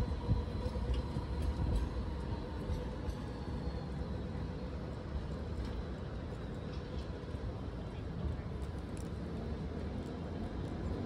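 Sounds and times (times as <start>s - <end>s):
city street ambience: 0.0s - 11.0s
tram rumble with electric whine: 0.0s - 11.0s.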